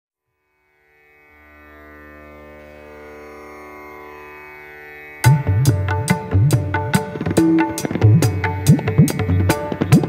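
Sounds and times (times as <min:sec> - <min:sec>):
indian-style drone music: 0:00.4 - 0:10.0.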